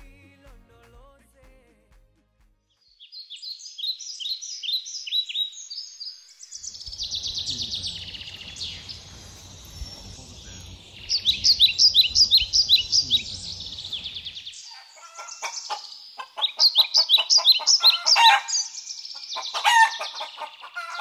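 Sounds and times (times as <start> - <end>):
high falling bird chirps: 2.8 - 21.0
lower harsher bird calls: 3.0 - 21.0
outdoor background rumble: 6.7 - 14.5.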